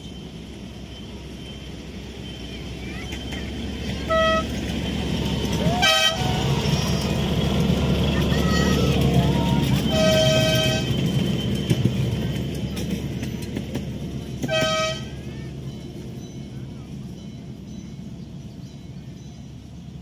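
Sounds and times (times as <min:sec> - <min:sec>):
train wheels rumbling on rails: 0:00.0 - 0:20.0
locomotive horn toots: 0:03.9 - 0:04.7, 0:05.5 - 0:07.2, 0:08.3 - 0:11.3, 0:14.4 - 0:15.3.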